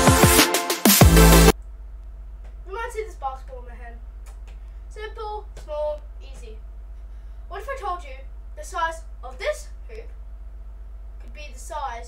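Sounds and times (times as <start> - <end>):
steady low hum: 1.0 - 12.0
boy speaking: 2.6 - 4.0, 4.9 - 6.6, 7.5 - 10.2, 11.2 - 12.0.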